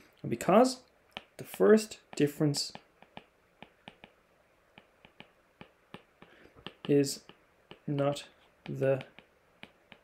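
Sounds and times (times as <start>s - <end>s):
stylus clicking on glass screen: 1.1s - 4.2s.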